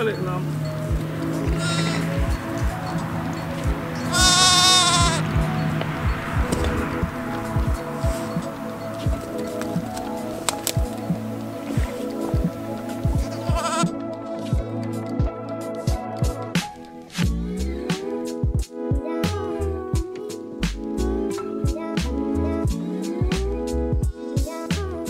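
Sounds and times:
background music with beat: 0.0 - 25.0
sheep bleating: 1.6 - 2.1, 4.1 - 5.2, 13.2 - 13.9.

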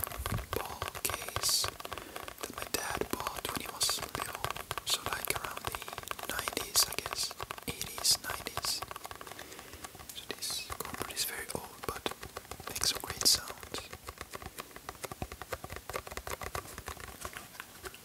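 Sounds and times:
sponge squishing crackles: 0.0 - 18.0.

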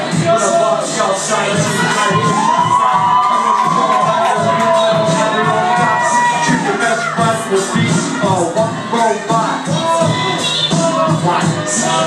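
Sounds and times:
crowd cheering and shouting: 0.0 - 12.0
hip-hop beat over a pa: 0.0 - 12.0.

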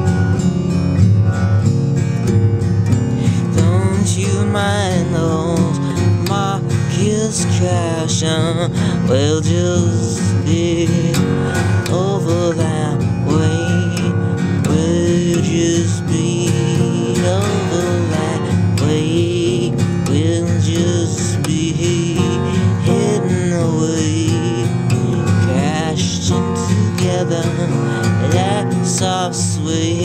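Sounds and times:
acoustic guitar strummed droning: 0.0 - 30.0
sliding guitar melody: 0.0 - 30.0.

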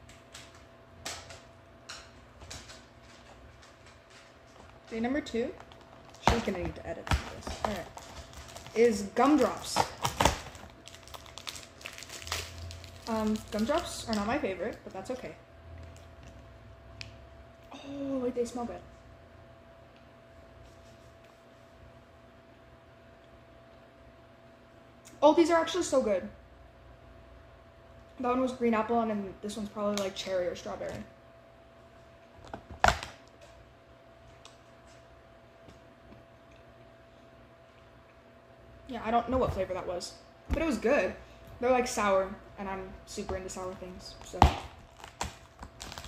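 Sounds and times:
faint steady hum: 0.0 - 46.0
plastic wrapper crinkling: 5.6 - 15.2, 44.2 - 46.0.

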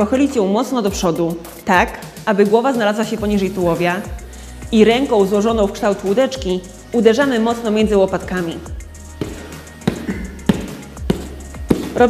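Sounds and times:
background music: 0.0 - 12.0
hand slaps on padded vest: 9.2 - 12.0.

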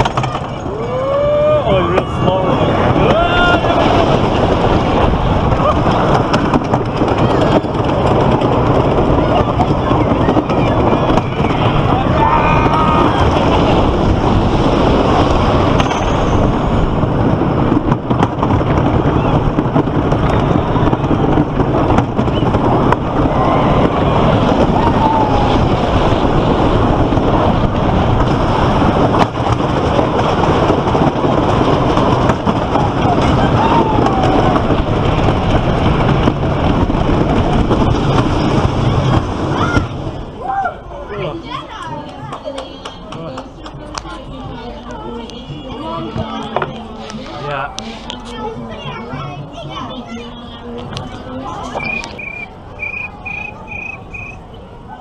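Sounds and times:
faint voices: 0.0 - 17.8, 18.5 - 55.0
roller coaster rumble and rattle: 0.0 - 55.0
wind rushing over microphone: 0.0 - 55.0.

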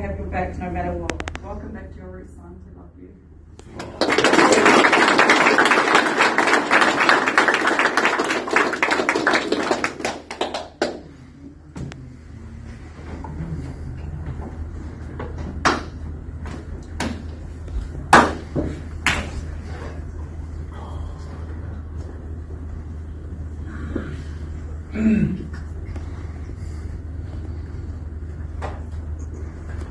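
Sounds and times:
crowd applauding: 3.7 - 11.1.

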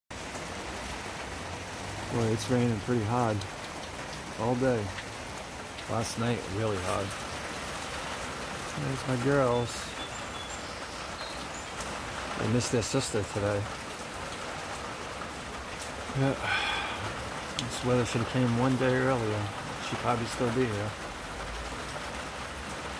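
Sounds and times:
heavy rain falling: 0.1 - 22.9.

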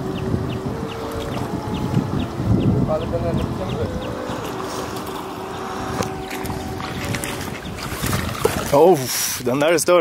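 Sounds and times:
wind on microphone: 0.0 - 9.1.

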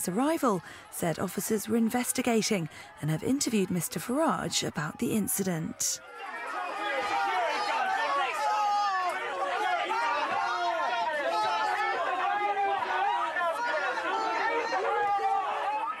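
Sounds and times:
crowd shouting and jeering: 0.0 - 16.0.

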